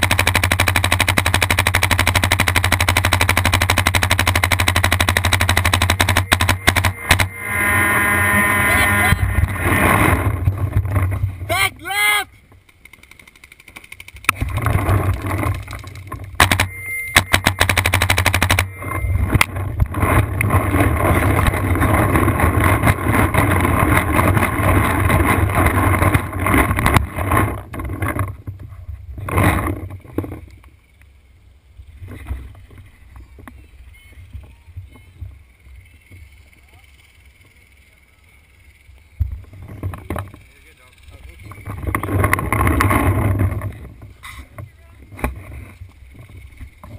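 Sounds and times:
paintball marker rapid shots: 0.0s - 7.4s, 12.7s - 18.8s
voices: 6.0s - 9.7s, 11.4s - 12.5s, 32.1s - 42.6s, 43.5s - 46.9s.

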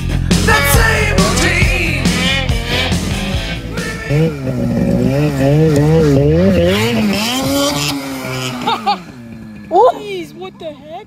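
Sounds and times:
snowmobile engine running hard: 0.0s - 11.0s.

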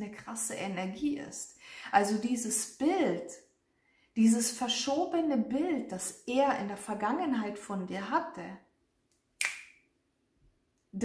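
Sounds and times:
sharp snap-like click: 9.1s - 9.8s.

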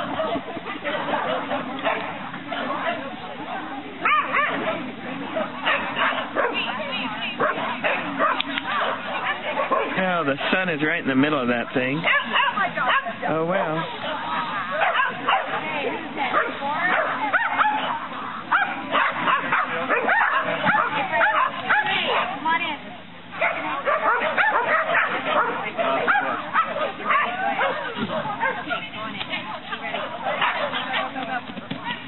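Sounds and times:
dogs barking and yipping: 0.0s - 3.1s, 4.0s - 10.6s, 12.0s - 13.2s, 13.8s - 22.5s, 23.2s - 32.0s
people's voices: 0.0s - 32.0s.

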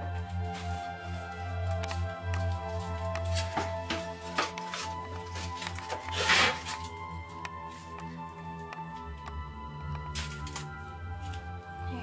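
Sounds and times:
music with held tones: 0.0s - 12.0s
aluminium foil crinkling: 0.3s - 8.0s, 10.1s - 11.4s.

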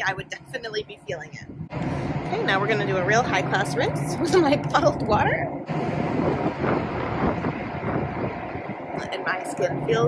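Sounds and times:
steady low hum: 0.0s - 10.0s
wind buffeting microphone: 0.0s - 10.0s.

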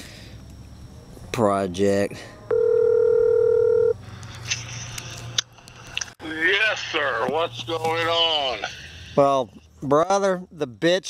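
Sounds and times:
phone line hiss: 2.5s - 4.0s.

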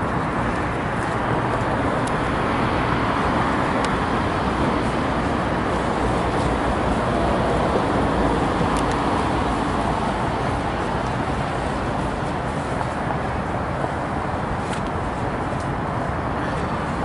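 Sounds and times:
passing cars: 0.0s - 17.0s.

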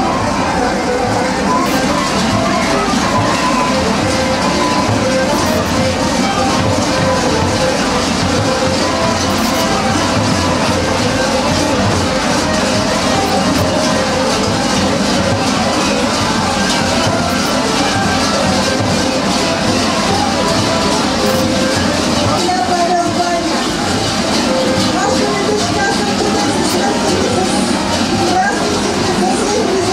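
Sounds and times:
large bells clanging: 0.0s - 29.9s.

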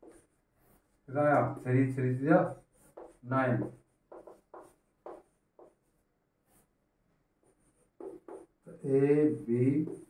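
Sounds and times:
chalk writing on blackboard: 0.0s - 6.8s, 7.4s - 8.8s, 9.4s - 10.0s
person speaking: 1.0s - 5.3s, 8.0s - 10.0s.

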